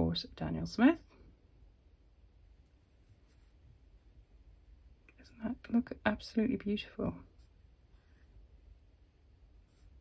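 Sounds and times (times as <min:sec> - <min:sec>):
paintbrush rubbing in palette: 0:02.6 - 0:03.8, 0:09.6 - 0:10.0.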